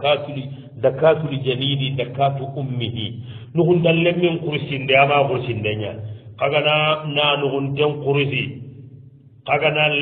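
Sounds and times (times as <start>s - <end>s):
man reciting in a chant: 0.0s - 8.8s, 9.4s - 10.0s.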